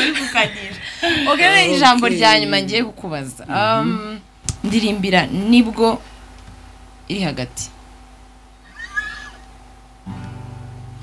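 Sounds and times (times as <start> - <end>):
woman speaking: 0.0 - 6.0, 7.1 - 7.8.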